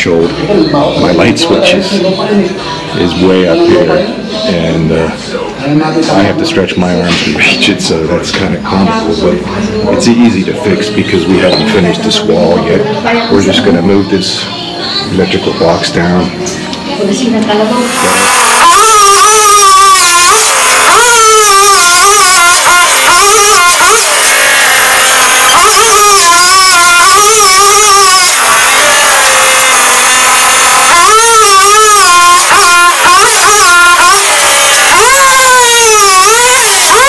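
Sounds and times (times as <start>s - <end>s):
earth auger engine boring: 17.6s - 37.0s.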